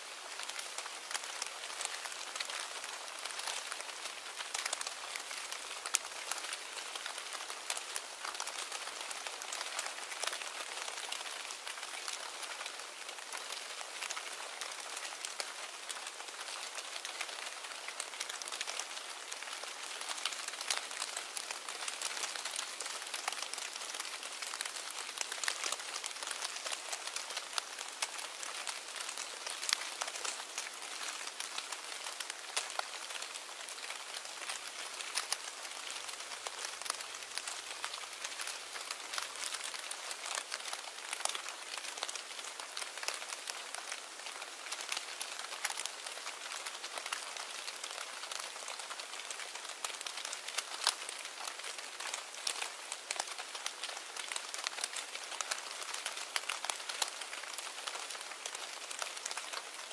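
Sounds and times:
hiss with fine crackles: 0:00.0 - 0:59.9.

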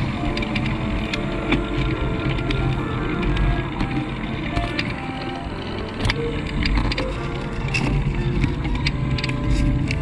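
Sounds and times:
background music: 0:00.0 - 0:10.0
light clicks and rattles: 0:00.0 - 0:10.0
wind rumble: 0:00.0 - 0:10.0.

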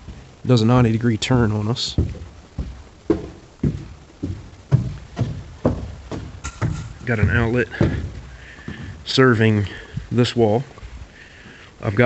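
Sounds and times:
footsteps on wooden stairs: 0:00.0 - 0:10.1.

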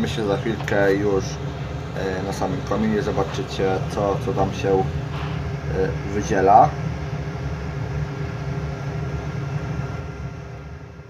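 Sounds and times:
boiler blower humming: 0:00.0 - 0:11.0.

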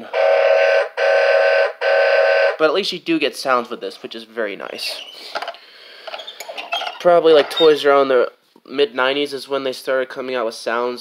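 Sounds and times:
toy electronic horn blasts: 0:00.0 - 0:02.6.

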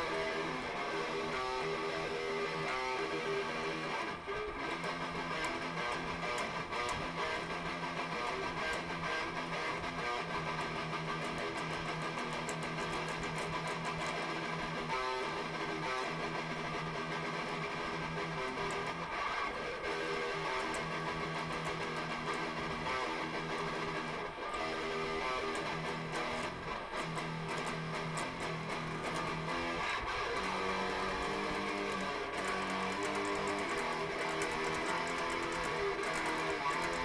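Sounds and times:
electric guitar solo: 0:00.0 - 0:37.0.

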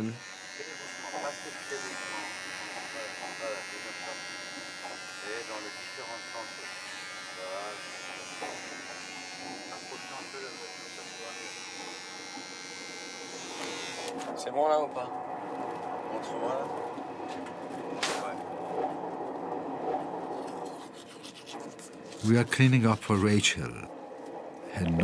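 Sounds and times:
electric shaver buzzing: 0:00.0 - 0:14.2.

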